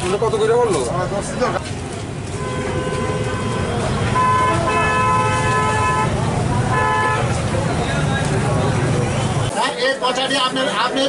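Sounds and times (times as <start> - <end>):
traffic rumble: 0.0 - 11.0
vehicle horn honking: 2.4 - 7.4.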